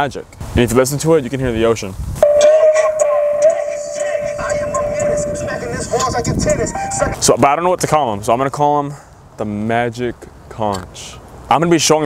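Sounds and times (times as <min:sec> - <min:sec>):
steady held tone: 0:02.2 - 0:07.2.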